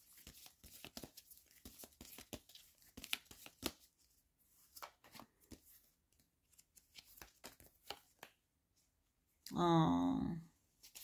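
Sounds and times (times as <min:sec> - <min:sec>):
cards being shuffled: 0:00.0 - 0:04.0, 0:04.6 - 0:08.4, 0:10.8 - 0:11.0.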